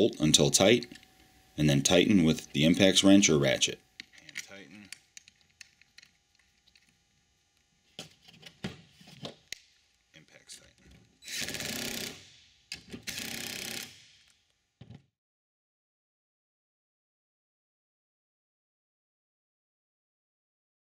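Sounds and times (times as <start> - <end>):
metal parts clicking and knocking: 4.0 - 6.9
cordless impact wrench bursts: 11.2 - 14.4.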